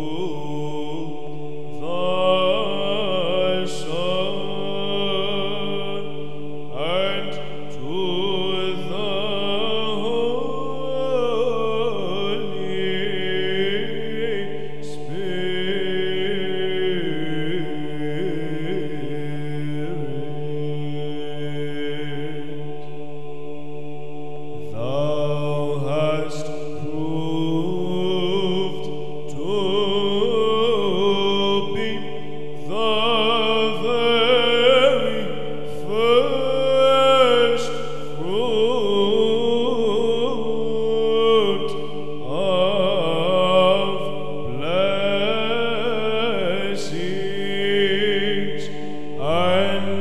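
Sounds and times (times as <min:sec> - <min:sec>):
held vocal drone: 0:00.0 - 0:50.0
ornamented chant melody: 0:00.0 - 0:50.0.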